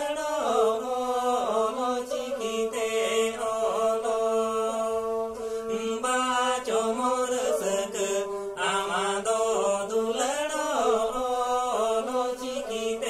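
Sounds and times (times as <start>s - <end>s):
bowed folk fiddles: 0.0s - 13.0s
men singing folk song: 0.0s - 13.0s.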